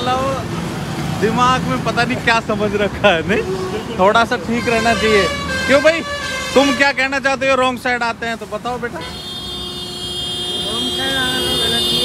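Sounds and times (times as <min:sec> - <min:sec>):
road traffic passing: 0:00.0 - 0:12.0.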